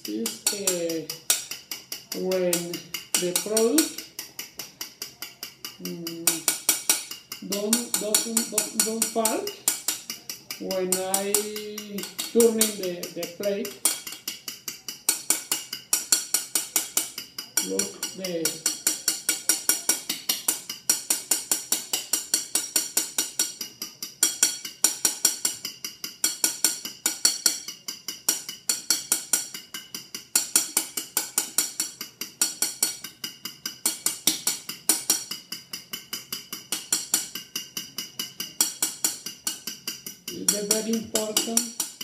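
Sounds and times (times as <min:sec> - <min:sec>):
fork beating egg whites in bowl: 0:00.0 - 0:42.0.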